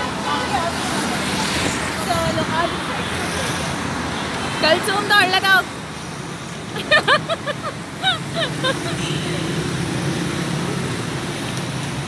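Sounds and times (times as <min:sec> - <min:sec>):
street traffic noise: 0:00.0 - 0:12.0.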